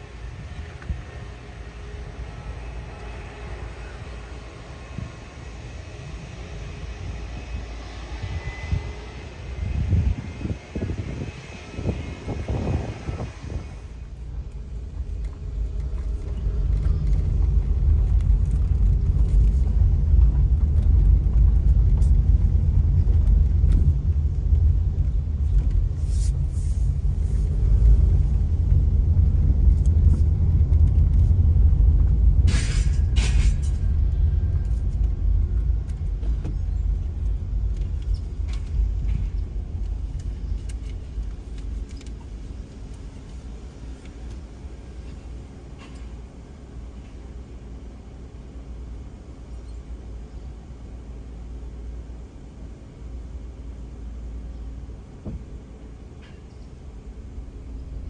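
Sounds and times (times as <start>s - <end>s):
car driving slowly: 13.6s - 47.0s.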